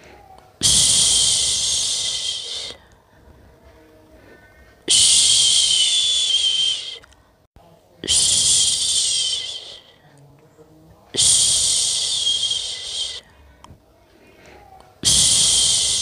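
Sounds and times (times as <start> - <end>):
person shushing: 0.1 - 2.8, 8.0 - 10.0, 14.6 - 16.0.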